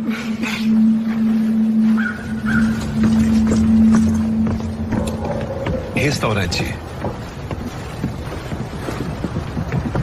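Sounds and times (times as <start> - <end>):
outdoor background sound: 0.0 - 10.0.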